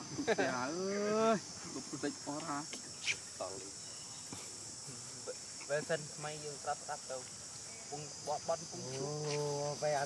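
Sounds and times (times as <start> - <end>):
insect chorus drone: 0.0 - 10.0.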